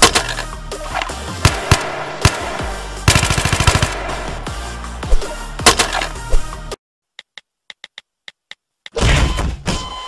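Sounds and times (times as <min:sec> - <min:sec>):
background music: 0:00.0 - 0:06.8
rifle gunshots: 0:01.4 - 0:04.5.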